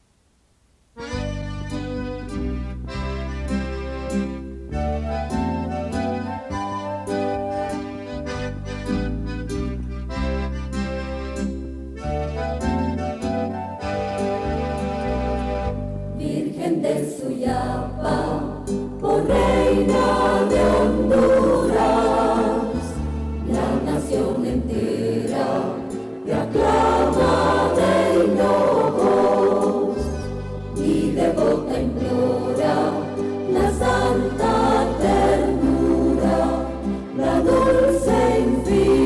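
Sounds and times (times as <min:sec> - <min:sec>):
low bass notes: 0:01.0 - 0:06.4, 0:07.5 - 0:16.2, 0:17.5 - 0:39.0
choir singing a hymn: 0:16.2 - 0:39.0.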